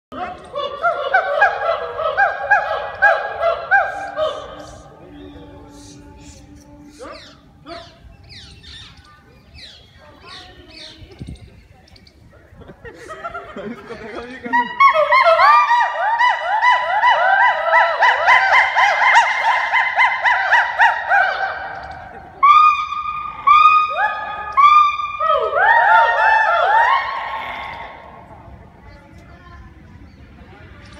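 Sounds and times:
gibbon whooping: 0.2s - 5.0s, 14.4s - 28.2s.

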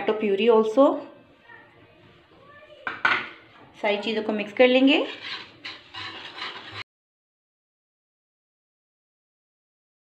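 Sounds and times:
spoon scraping thick marinade: 4.5s - 6.8s.

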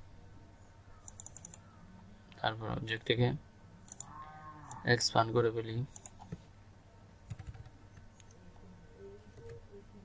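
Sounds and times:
keyboard keystrokes: 7.3s - 8.1s.

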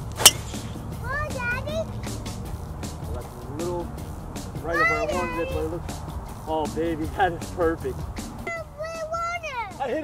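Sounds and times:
young child calling out: 1.0s - 1.9s, 8.5s - 9.8s.

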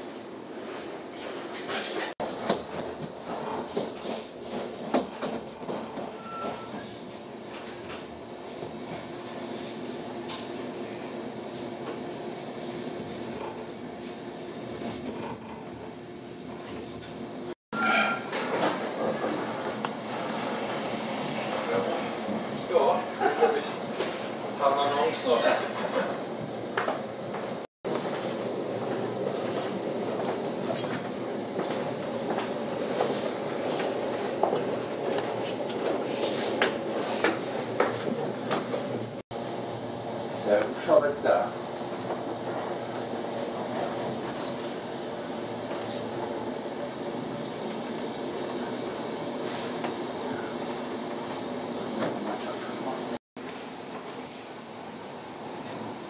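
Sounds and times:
train rumble inside carriage: 0.0s - 56.0s.

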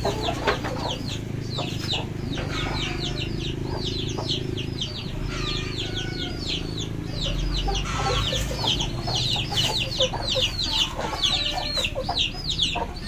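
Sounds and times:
chicks peeping: 0.0s - 13.0s
hen clucking: 0.0s - 13.0s.

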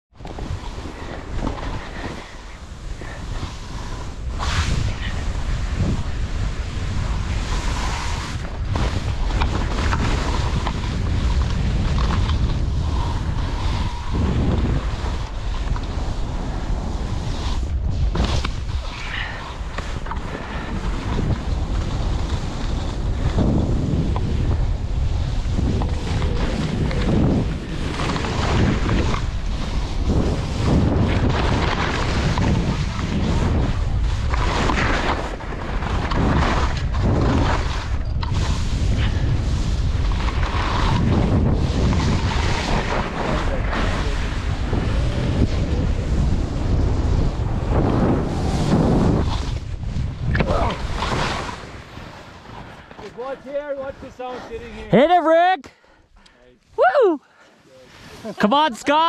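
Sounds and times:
wind buffeting microphone: 0.1s - 55.0s
skis sliding through snow: 0.2s - 55.3s, 57.4s - 59.0s.

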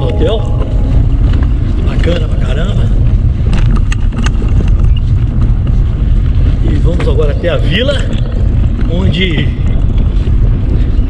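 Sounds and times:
wind buffeting microphone: 0.0s - 11.0s
bicycle clicks: 1.4s - 11.0s.

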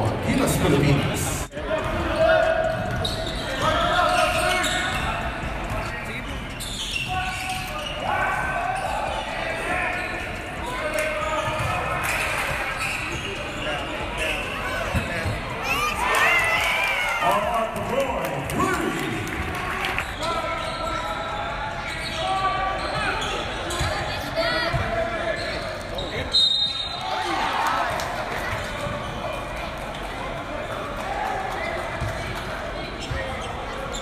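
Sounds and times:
gymnasium hall noise: 0.0s - 34.0s
spectators talking: 0.0s - 34.0s.

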